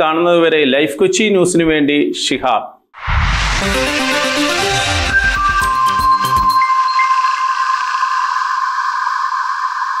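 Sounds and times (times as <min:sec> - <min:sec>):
airy synthesized tone: 0:03.0 - 0:10.0.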